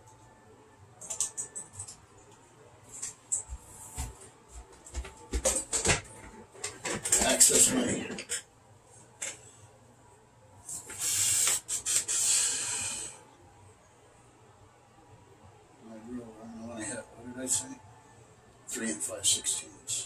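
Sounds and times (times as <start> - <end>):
long hissing rustles: 10.7 - 13.2.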